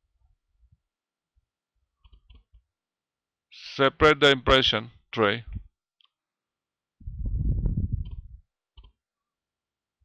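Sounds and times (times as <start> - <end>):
low rough rumbling: 7.0 - 8.4.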